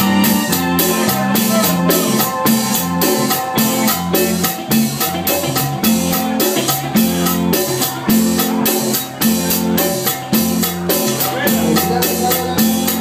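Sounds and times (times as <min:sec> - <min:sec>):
drum and percussion beat: 0:00.0 - 0:13.0.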